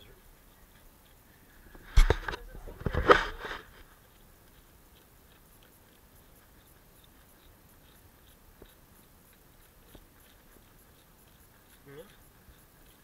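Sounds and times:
rustling: 0.0 - 13.0.

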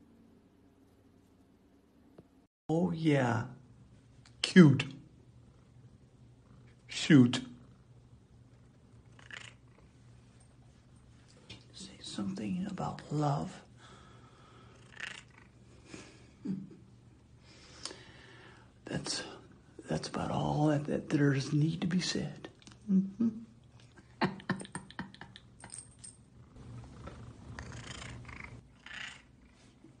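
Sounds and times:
cat purring: 7.6 - 10.2, 26.3 - 29.8.

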